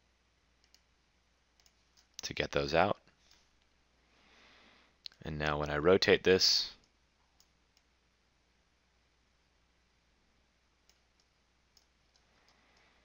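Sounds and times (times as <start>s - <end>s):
faint computer mouse clicks: 0.6s - 0.9s.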